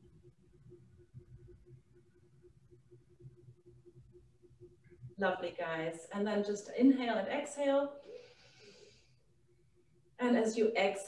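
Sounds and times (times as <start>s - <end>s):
woman's faint breath: 8.0s - 9.2s.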